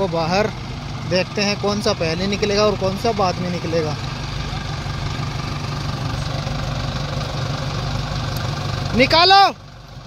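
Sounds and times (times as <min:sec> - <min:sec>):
tractor diesel engines droning: 0:00.0 - 0:10.0.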